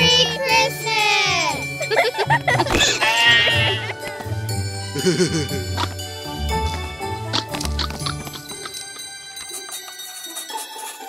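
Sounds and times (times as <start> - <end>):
bouncy children's christmas music: 0.0 - 11.0
cartoon sheep bleating: 2.8 - 4.0.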